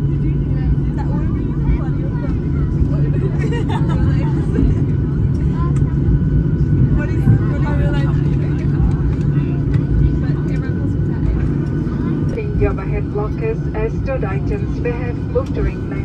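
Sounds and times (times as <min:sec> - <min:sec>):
airliner cabin rumble: 0:00.0 - 0:16.0
faint voices: 0:00.0 - 0:16.0
cabin announcement: 0:05.6 - 0:16.0.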